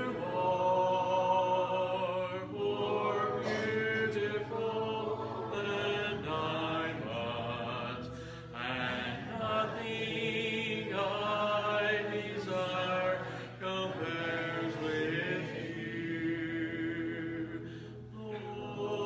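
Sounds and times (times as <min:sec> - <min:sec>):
congregation singing a hymn: 0:00.0 - 0:19.0.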